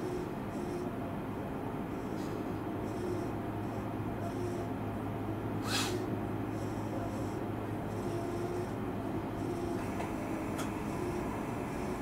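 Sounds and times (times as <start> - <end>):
low equipment hum: 0.0 - 12.0
sharp compressed air hiss: 5.6 - 6.0.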